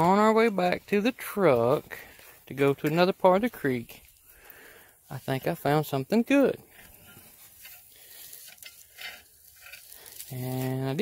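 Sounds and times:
garden fork scratching pine needles: 0:06.6 - 0:11.0.

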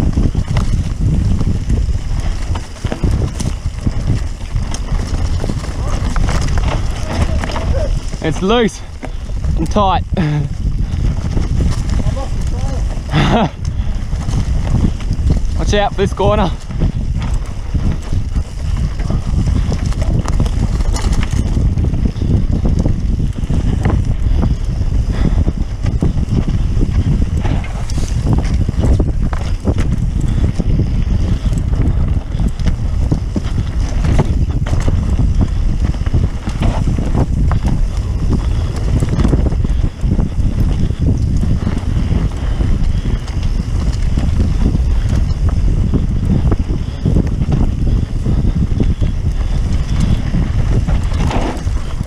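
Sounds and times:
bike knocks and rattles: 0:00.0 - 0:52.0
bike tyres on loose dirt: 0:00.0 - 0:52.0
wind buffeting microphone: 0:00.0 - 0:52.0.

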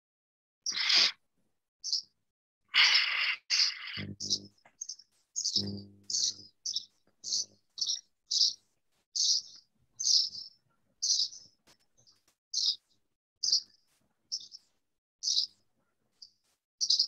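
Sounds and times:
bird chirping: 0:00.6 - 0:01.2, 0:01.8 - 0:02.2, 0:02.8 - 0:08.6, 0:09.2 - 0:17.0.

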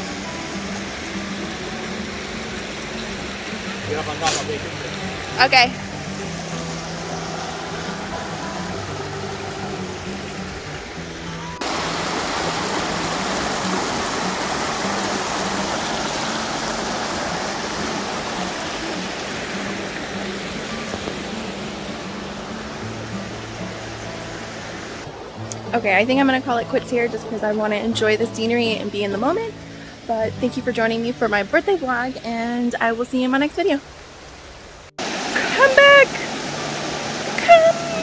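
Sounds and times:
faint music: 0:00.0 - 0:33.8
creek rushing over stones: 0:00.0 - 0:38.0.

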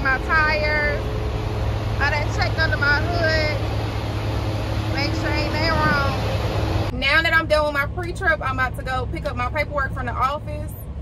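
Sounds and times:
woman speaking: 0:00.0 - 0:01.0, 0:02.0 - 0:03.6, 0:04.9 - 0:10.8
diesel truck engine idling: 0:00.0 - 0:11.0.

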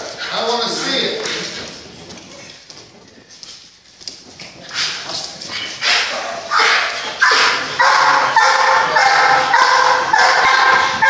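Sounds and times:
large dog barking: 0:05.5 - 0:11.0.

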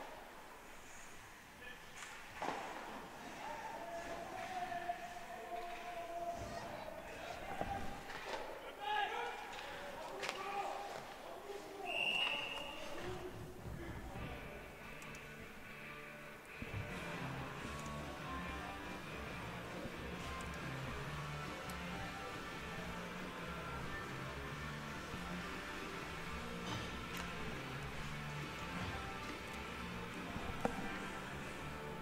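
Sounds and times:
referee's whistle: 0:11.8 - 0:13.0.

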